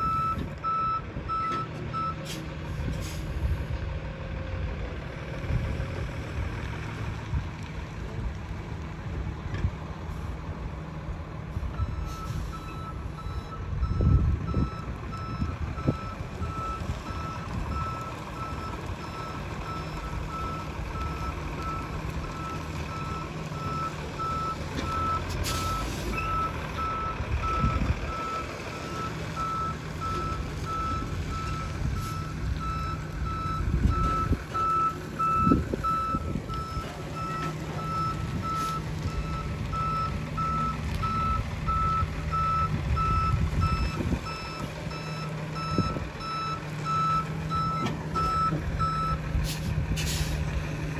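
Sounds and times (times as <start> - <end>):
truck backup alarm beeping: 0.0 - 2.2, 11.7 - 50.4
truck engine running: 0.0 - 50.9.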